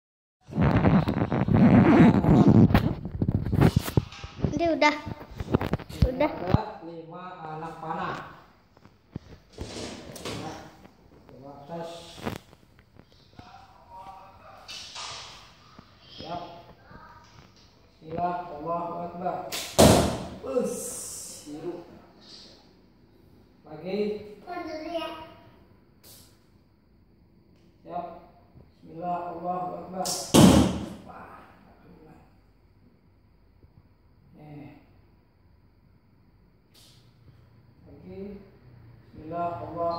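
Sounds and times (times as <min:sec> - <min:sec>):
sharp snap: 0:19.5 - 0:20.4, 0:26.0 - 0:26.4, 0:30.0 - 0:31.0, 0:36.7 - 0:37.0.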